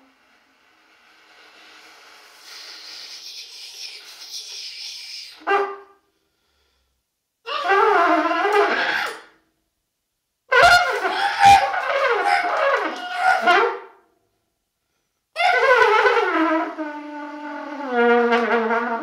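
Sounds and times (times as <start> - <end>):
trumpet playing: 10.5 - 13.9.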